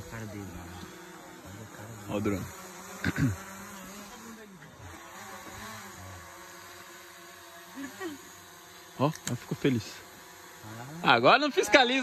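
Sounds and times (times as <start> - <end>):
drone propeller buzz: 0.0 - 12.0.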